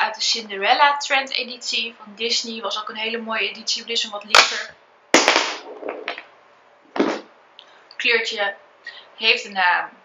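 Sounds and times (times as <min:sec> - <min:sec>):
plastic tubes knocking together: 0:05.2 - 0:06.3, 0:06.9 - 0:07.3.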